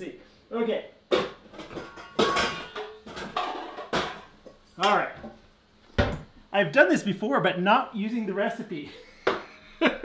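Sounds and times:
bowls knocking and clinking: 1.1 - 4.6.

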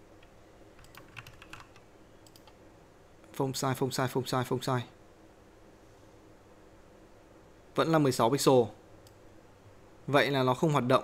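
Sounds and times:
computer keyboard keystrokes: 0.2 - 2.6.

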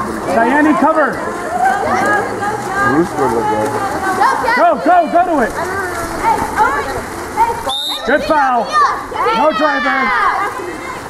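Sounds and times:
splashing pool water: 0.0 - 11.0
spectators shouting: 3.9 - 11.0
referee's whistle: 7.7 - 8.1.

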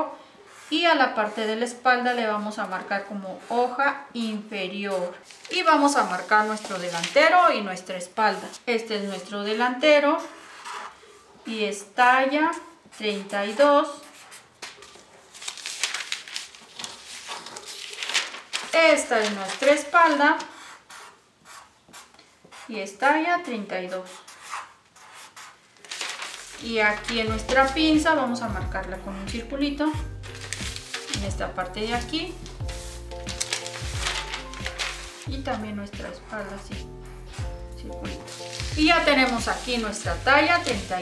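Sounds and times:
paper sheets rustling and sliding: 5.1 - 7.7, 14.1 - 20.2, 25.3 - 28.0, 30.2 - 36.6, 38.1 - 41.0
background music with held tones: 26.6 - 41.0.

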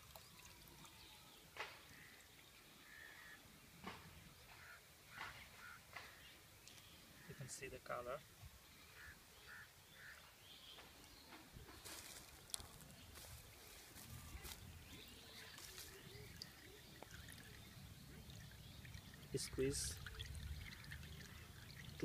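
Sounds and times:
faint animal or bird calls: 4.5 - 6.3, 8.8 - 10.2.

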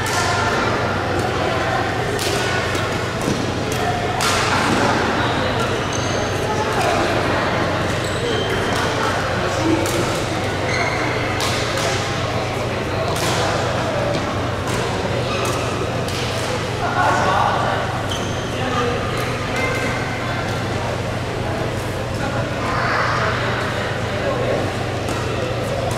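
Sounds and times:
shoes squeaking on court: 18.1 - 18.6.

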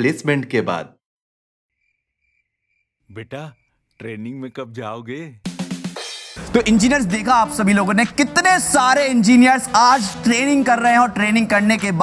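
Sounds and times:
cricket chirping: 1.7 - 4.5.

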